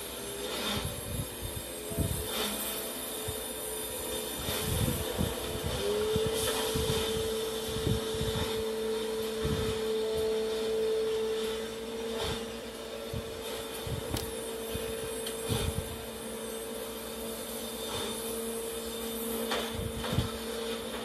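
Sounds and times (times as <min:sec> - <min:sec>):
industrial machinery humming: 0:00.0 - 0:21.0
motor whine: 0:00.0 - 0:21.0.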